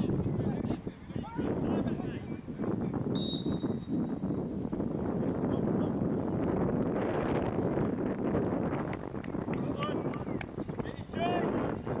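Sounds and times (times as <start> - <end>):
wind on microphone: 0.0 - 12.0
referee's whistle blast: 3.2 - 4.0.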